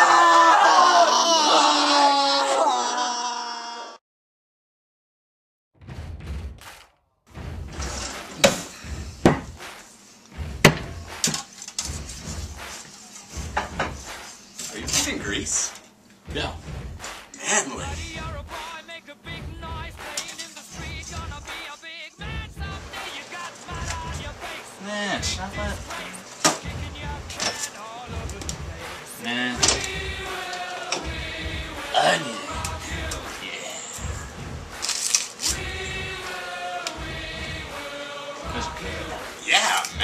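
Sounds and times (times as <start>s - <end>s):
sharp knocks or bangs: 5.8s - 12.8s
person speaking indistinctly: 24.8s - 26.3s.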